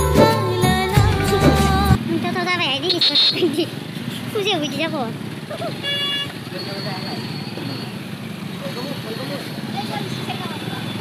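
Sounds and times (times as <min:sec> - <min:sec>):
vehicle horn toot: 0:02.9 - 0:03.5, 0:05.8 - 0:07.8.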